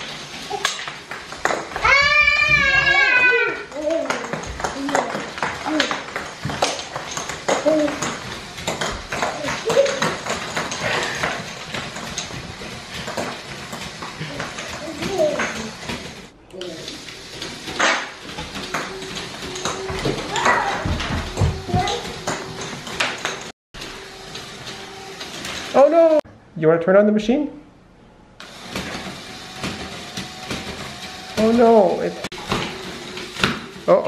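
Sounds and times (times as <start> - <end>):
plastic toy parts clattering on floor: 0.0 - 2.0, 3.6 - 16.2
small children's voices and squeals: 1.8 - 4.2.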